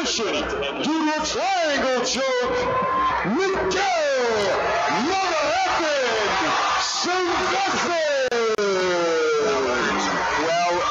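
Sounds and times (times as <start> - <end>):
crowd noise in hall: 0.0 - 10.9
announcer's amplified drawn-out call: 1.0 - 10.9.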